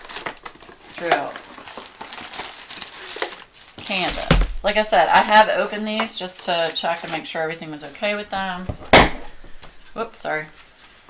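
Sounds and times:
plastic wrapping crinkling: 0:00.0 - 0:08.6.

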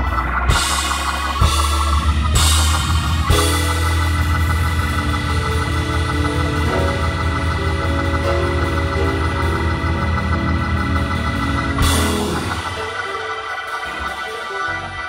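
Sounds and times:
bright noisy bursts: 0:00.0 - 0:15.0
deep bass: 0:00.0 - 0:15.0
organ chords: 0:00.0 - 0:15.0.

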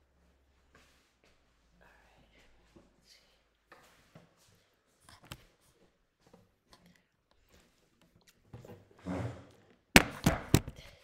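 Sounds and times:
sharp knocks and thumps: 0:10.0 - 0:10.8.

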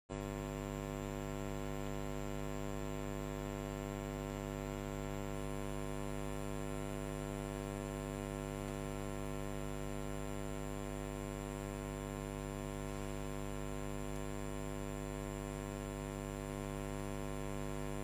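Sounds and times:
electrical mains hum: 0:00.1 - 0:18.0.

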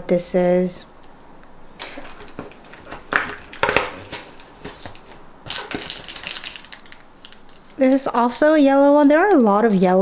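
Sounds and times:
cardboard crackling and tearing: 0:02.0 - 0:08.2.

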